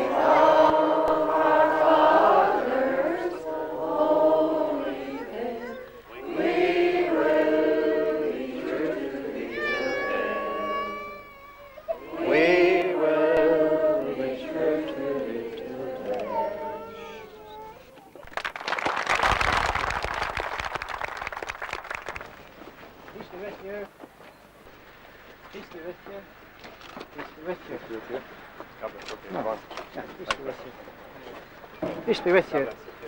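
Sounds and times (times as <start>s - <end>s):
congregation singing a hymn: 0.0s - 11.2s, 11.9s - 17.0s
crowd applauding: 18.2s - 22.5s.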